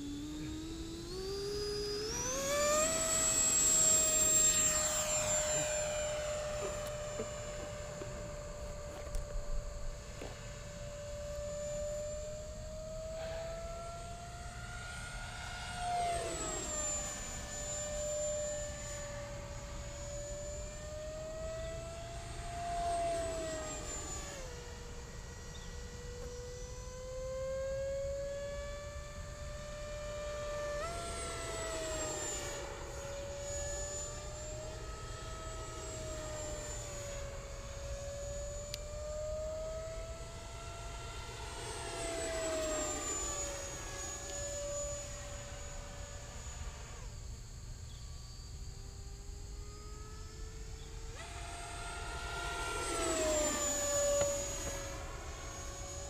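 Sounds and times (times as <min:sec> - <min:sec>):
model jet ducted fan whine: 0:00.0 - 0:56.0.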